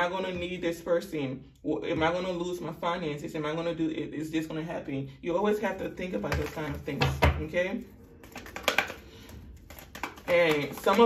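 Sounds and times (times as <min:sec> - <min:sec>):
cards being shuffled: 0:07.8 - 0:11.0.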